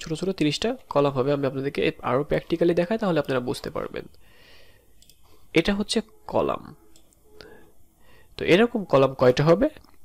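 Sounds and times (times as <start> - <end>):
computer mouse clicks: 5.0 - 5.3.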